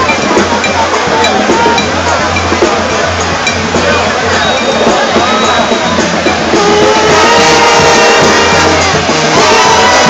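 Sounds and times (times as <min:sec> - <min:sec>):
brass band playing: 0:00.0 - 0:10.0
crowd voices: 0:00.0 - 0:10.0
held horn notes: 0:01.3 - 0:10.0.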